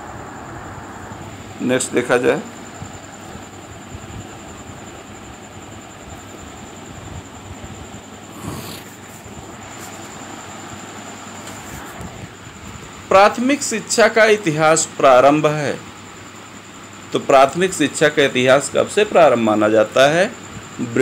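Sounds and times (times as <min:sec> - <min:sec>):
background hum and hiss: 0:00.0 - 0:21.0.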